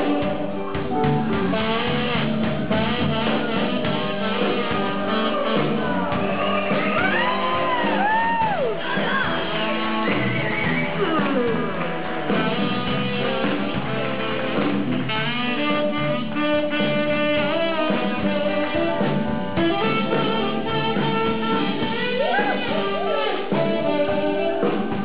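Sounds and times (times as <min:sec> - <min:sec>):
blues band playing: 0:00.0 - 0:25.0
saxophone lead line: 0:00.0 - 0:25.0.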